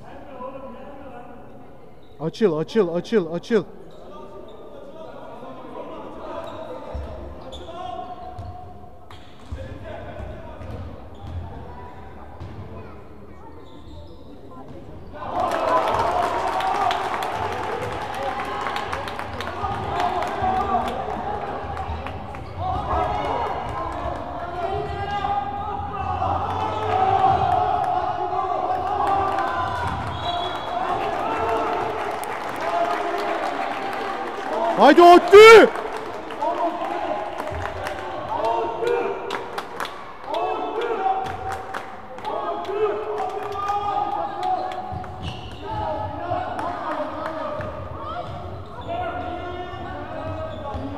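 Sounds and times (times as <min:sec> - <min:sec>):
people shouting: 0:34.8 - 0:35.7.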